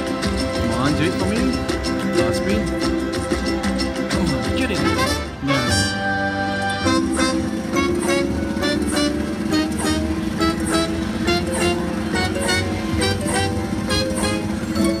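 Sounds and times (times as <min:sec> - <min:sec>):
slot machine music with beat: 0:00.0 - 0:15.0.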